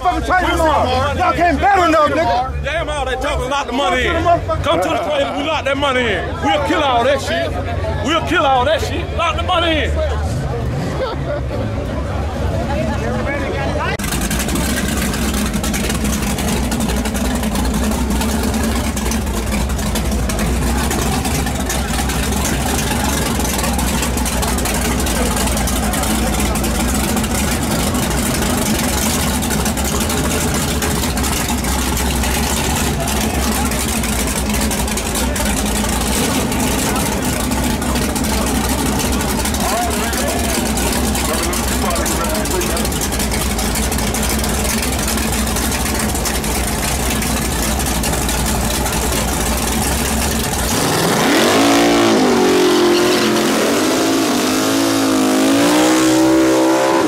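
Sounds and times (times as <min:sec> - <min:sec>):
crowd voices: 0:00.0 - 0:57.0
drag car engine rumbling: 0:00.0 - 0:57.0
engine revving: 0:14.0 - 0:57.0.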